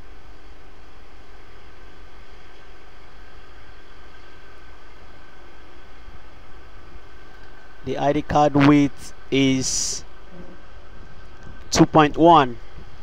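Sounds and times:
low mechanical hum with hiss: 0.0s - 13.0s.

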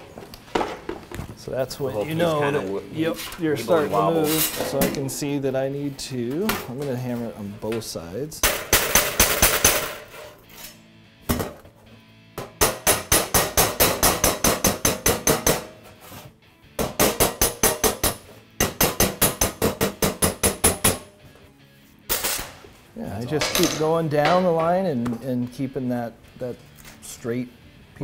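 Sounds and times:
hammer tapping on sheet steel: 8.4s - 10.0s, 12.4s - 15.8s, 16.8s - 21.1s.

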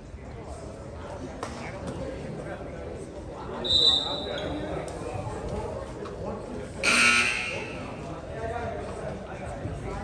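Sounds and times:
voices in a gym: 0.0s - 10.0s
referee's whistle blast: 6.8s - 7.9s.

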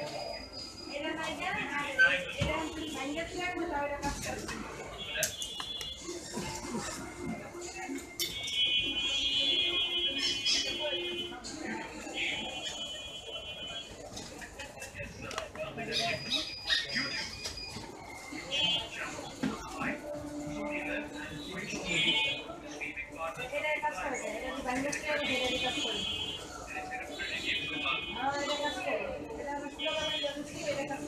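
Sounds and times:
voices: 0.0s - 31.0s
music: 6.4s - 11.4s.

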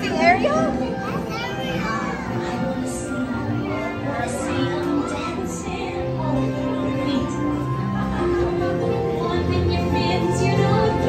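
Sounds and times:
ride music: 0.0s - 11.0s
children squealing excitedly: 1.0s - 2.6s.

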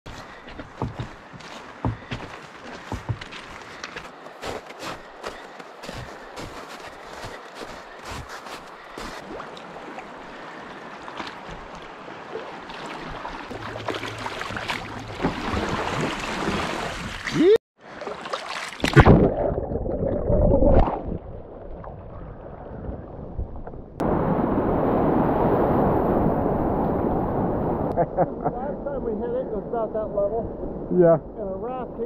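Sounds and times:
footsteps crunching on gravel: 0.1s - 9.2s
footsteps on snow: 0.1s - 9.2s
river water flowing: 0.1s - 18.9s.

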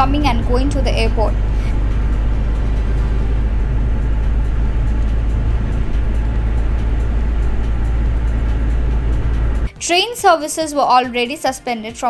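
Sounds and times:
vehicle road and wind rumble: 0.0s - 9.8s.

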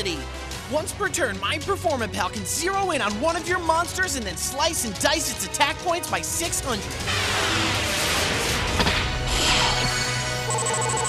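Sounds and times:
background music: 0.0s - 11.0s
pulsing electronic chime: 9.4s - 11.0s.

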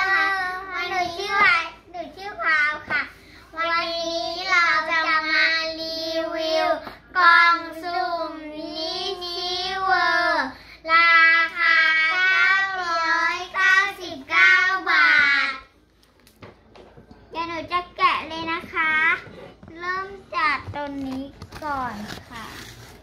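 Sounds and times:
child singing: 0.0s - 15.7s.

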